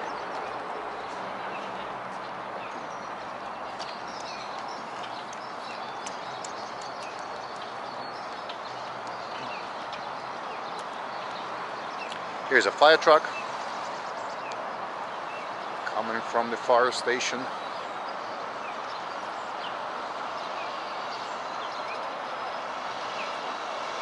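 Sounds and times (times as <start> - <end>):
footsteps on wooden boardwalk: 0.0 - 12.3.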